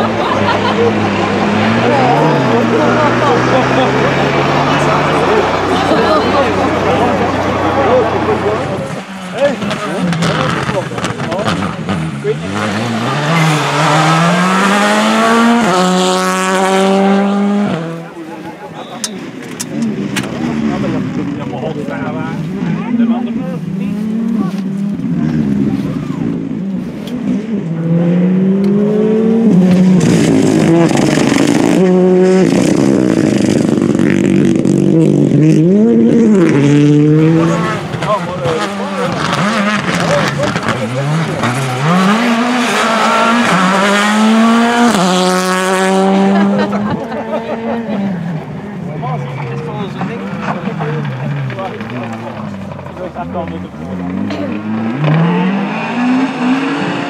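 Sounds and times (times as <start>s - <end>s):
rally car engines at full throttle: 0.0s - 57.0s.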